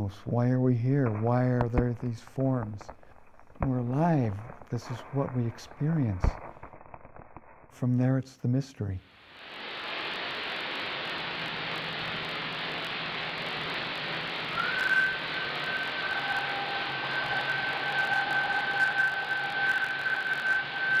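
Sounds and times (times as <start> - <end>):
radio receiver hiss: 0.0 - 21.0
faint lower radio tone: 3.6 - 6.4, 12.9 - 21.0
whistling radio tone: 3.6 - 6.4, 11.4 - 21.0.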